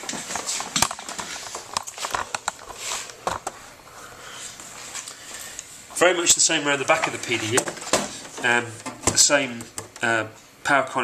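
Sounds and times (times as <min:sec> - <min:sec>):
handling knocks and clicks: 0:07.0 - 0:10.1.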